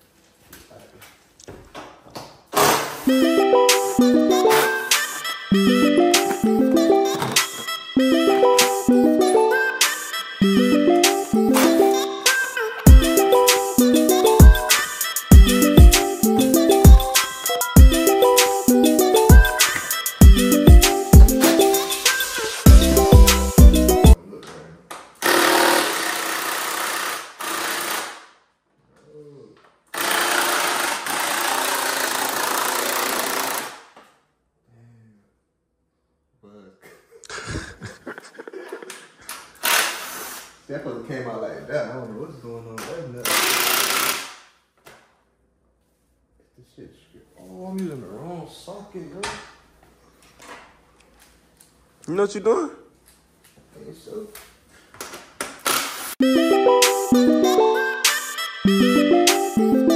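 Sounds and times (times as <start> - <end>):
hip hop music: 3.1 - 24.2, 56.2 - 59.9
cordless drill running: 25.2 - 28.2, 29.9 - 33.8, 39.6 - 40.4, 43.3 - 44.2.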